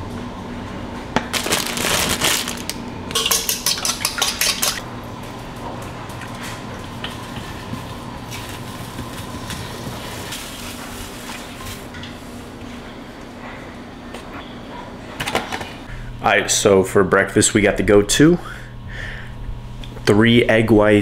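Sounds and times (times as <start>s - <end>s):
plastic bag crinkling: 1.3s - 2.8s
faint steady hum: 15.8s - 21.0s.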